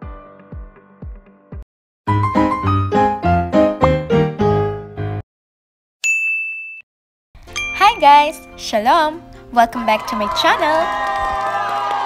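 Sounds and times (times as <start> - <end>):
music: 0.0 - 5.2, 7.4 - 12.0
bright chime ding: 6.0 - 6.8, 7.5 - 8.7
woman's voice: 7.8 - 10.9.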